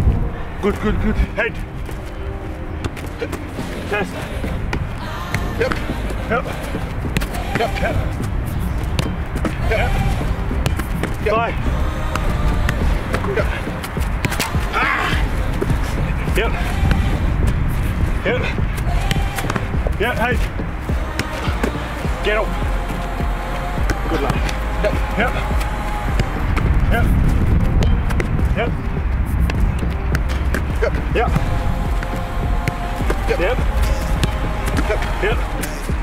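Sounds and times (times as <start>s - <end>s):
background music: 0.0s - 36.0s
people shouting calls: 3.1s - 8.9s, 9.5s - 10.5s, 11.2s - 27.4s, 30.7s - 36.0s
football kick thuds: 8.8s - 11.5s, 18.0s - 36.0s.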